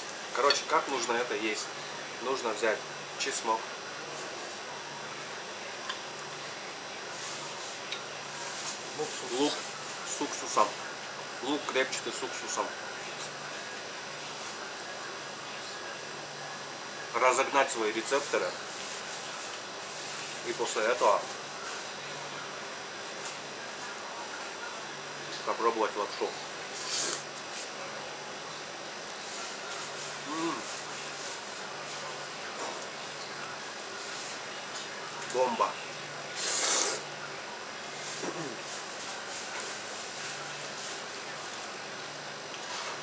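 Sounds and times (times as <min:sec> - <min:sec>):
background hum and hiss: 0:00.0 - 0:43.0
faint high whine: 0:00.0 - 0:43.0
ventilation fan rushing: 0:00.0 - 0:43.0
man humming mm: 0:30.2 - 0:30.8, 0:38.2 - 0:38.7
noodle slurp: 0:36.4 - 0:37.0.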